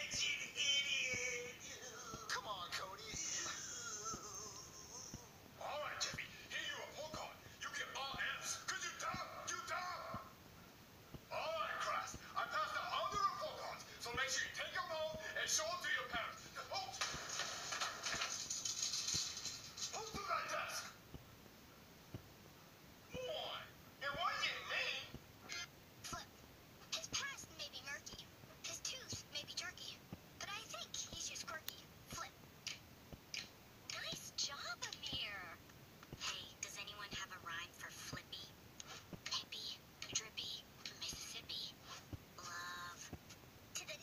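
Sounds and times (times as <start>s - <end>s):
person's voice: 0.0s - 10.3s, 11.2s - 17.0s, 23.1s - 26.3s, 27.0s - 32.8s, 33.4s - 38.5s, 39.2s - 43.2s, 43.8s - 44.0s
whispery cartoon dialogue: 0.0s - 10.4s, 11.2s - 17.0s, 19.8s - 21.0s, 23.0s - 44.0s
noisy clatter: 16.9s - 20.3s.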